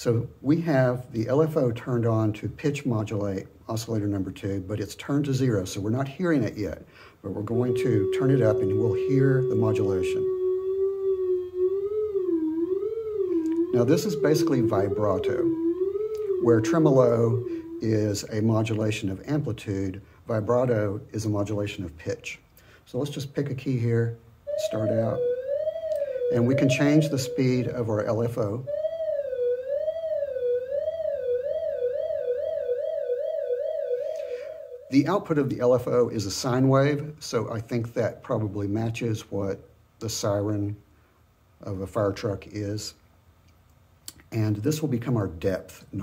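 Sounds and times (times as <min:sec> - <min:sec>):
oscillator tone with vibrato: 0:07.4 - 0:18.5, 0:24.5 - 0:35.1.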